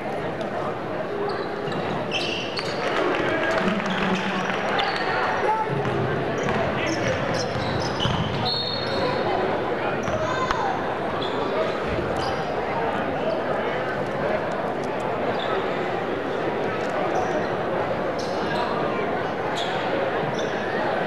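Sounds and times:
crowd voices echoing: 0:00.0 - 0:21.0
basketball bouncing: 0:05.8 - 0:08.4
shoes squeaking: 0:06.4 - 0:09.2.

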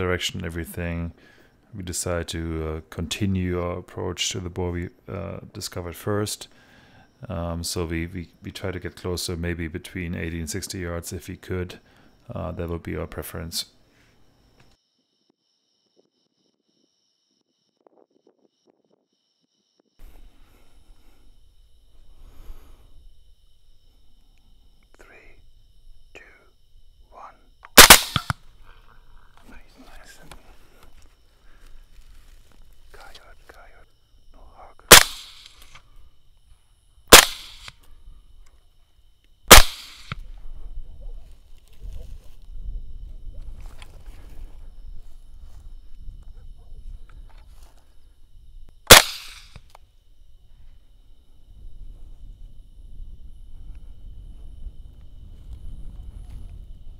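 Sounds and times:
rifle shots: 0:27.7 - 0:28.4, 0:34.9 - 0:35.8, 0:37.1 - 0:37.7, 0:39.5 - 0:40.2, 0:48.9 - 0:49.6.

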